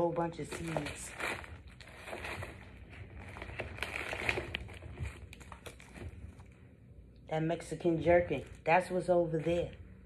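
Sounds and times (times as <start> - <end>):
paper packets crinkling: 0.4 - 6.4.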